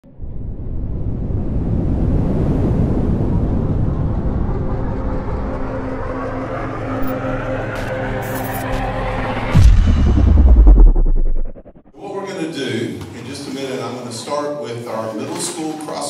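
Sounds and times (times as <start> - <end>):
rumbling whoosh: 0.1 - 12.0
synth tones: 4.0 - 11.9
brief hit: 7.0 - 11.8.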